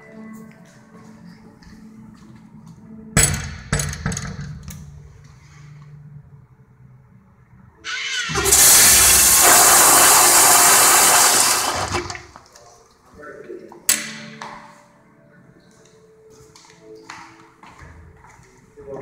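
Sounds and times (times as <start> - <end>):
toilet flushing water rush: 7.9 - 12.5.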